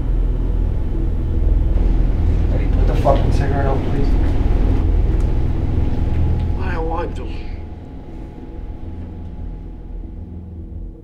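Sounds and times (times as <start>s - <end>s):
loud low rumble: 0.0s - 11.0s.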